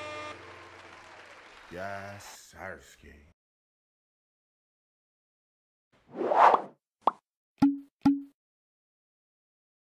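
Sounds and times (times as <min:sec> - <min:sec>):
pops with low tone: 0:07.6 - 0:08.4.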